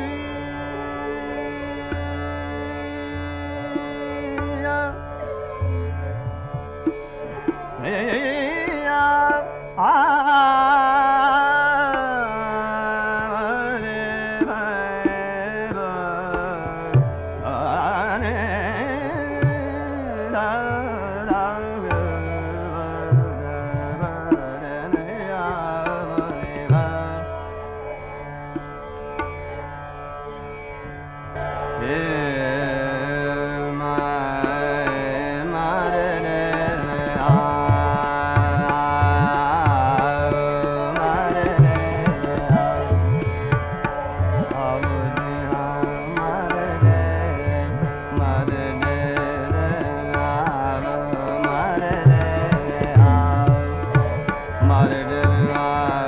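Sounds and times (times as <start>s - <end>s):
tabla strokes: 5.2s - 9.4s, 35.9s - 56.0s
person singing: 7.0s - 27.4s, 31.8s - 56.0s.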